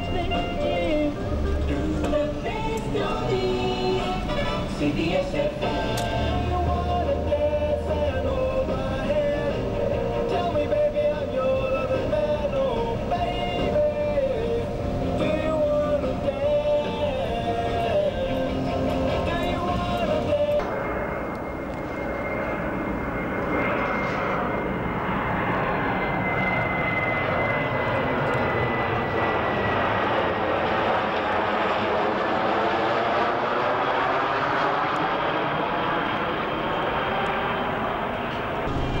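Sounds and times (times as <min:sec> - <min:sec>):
jet airliner flying overhead: 0:00.0 - 0:39.0.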